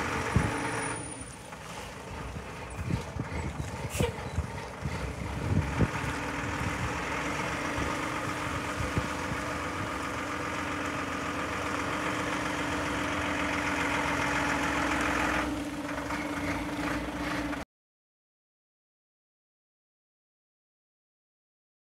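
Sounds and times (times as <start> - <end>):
diesel truck engine at low speed: 0.0 - 17.7.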